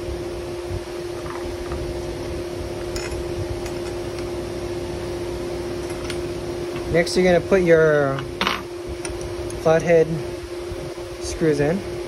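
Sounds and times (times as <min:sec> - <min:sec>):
fan-like mechanical hum: 0:00.0 - 0:12.0.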